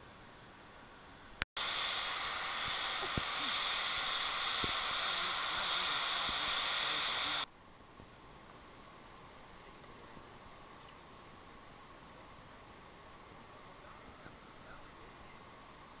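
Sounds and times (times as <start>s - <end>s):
steam locomotive venting steam: 1.6s - 7.5s.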